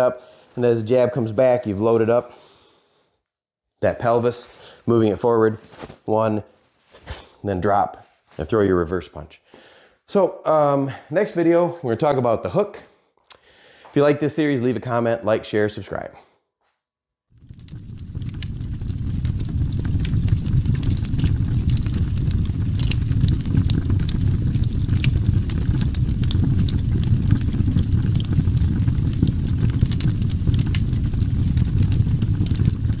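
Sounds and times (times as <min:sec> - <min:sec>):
small sharp crackles: 0:17.3 - 0:33.0
low rumbling noise: 0:17.4 - 0:33.0.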